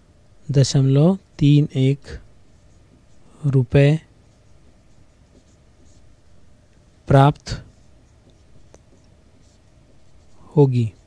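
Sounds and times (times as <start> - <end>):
handwriting strokes: 1.2 - 11.0.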